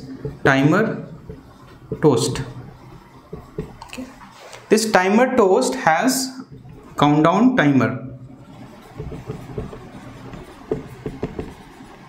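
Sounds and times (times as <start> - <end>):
marker strokes on whiteboard: 0.0 - 4.9, 5.6 - 7.2, 8.1 - 12.0.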